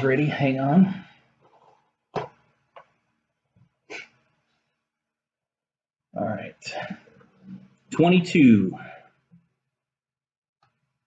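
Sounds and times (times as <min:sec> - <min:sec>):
objects knocking on a table: 0:02.1 - 0:02.9.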